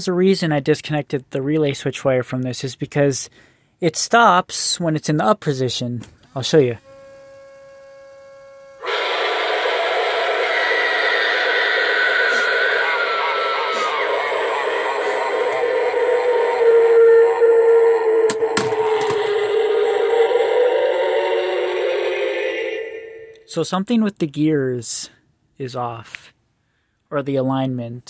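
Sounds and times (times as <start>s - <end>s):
recorded scream and growl: 8.8s - 23.6s.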